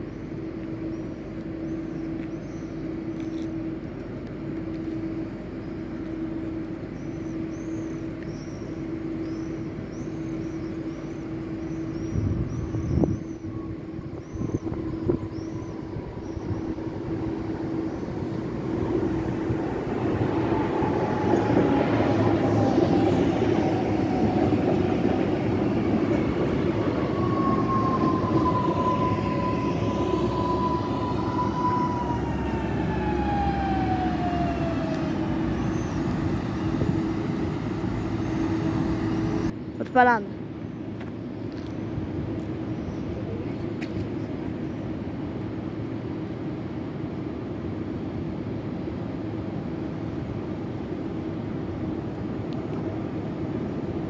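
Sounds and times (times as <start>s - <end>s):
train wheels rumbling on rails: 0.0s - 40.2s
train motor whine: 1.3s - 39.5s.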